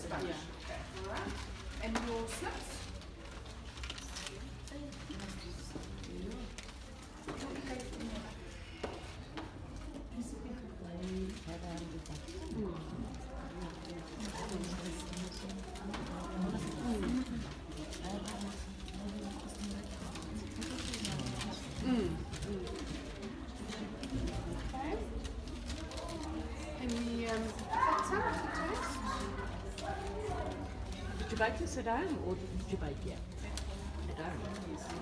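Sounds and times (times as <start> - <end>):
indistinct talking and murmuring: 0.0 - 35.0.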